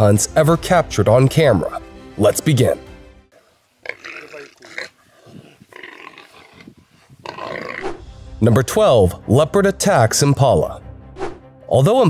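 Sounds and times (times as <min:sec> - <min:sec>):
leopard growling: 0:03.8 - 0:08.0
warthog distress cries: 0:03.8 - 0:08.0.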